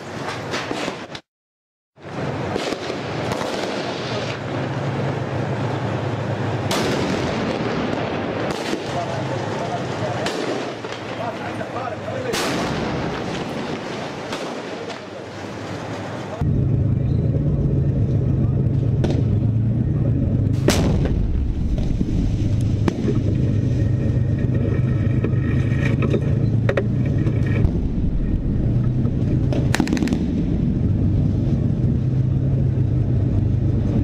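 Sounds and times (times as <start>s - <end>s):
gunfire cracks: 2.5s - 4.4s, 6.7s - 9.2s, 10.2s - 11.1s, 12.3s - 15.2s, 20.6s - 22.1s, 29.5s - 30.5s
tank engine droning: 4.1s - 10.3s, 15.1s - 34.0s.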